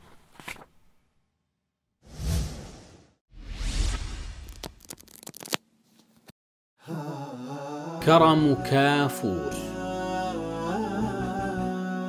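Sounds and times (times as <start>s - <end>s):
whoosh sound effects: 2.1s - 4.6s.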